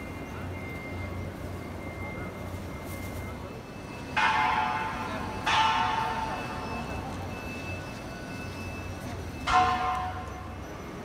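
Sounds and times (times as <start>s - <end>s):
loud bell-like chimes: 0.0s - 11.0s.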